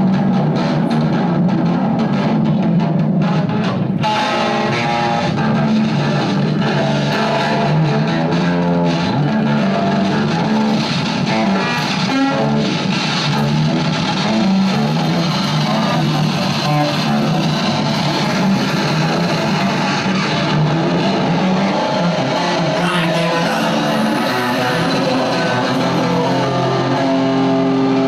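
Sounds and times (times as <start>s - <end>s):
electric guitar through effects: 0.0s - 28.0s
electronic noise wash: 11.9s - 28.0s.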